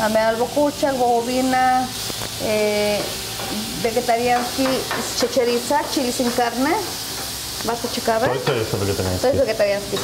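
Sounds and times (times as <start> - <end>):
chicken sizzling on griddle: 0.0 - 10.0.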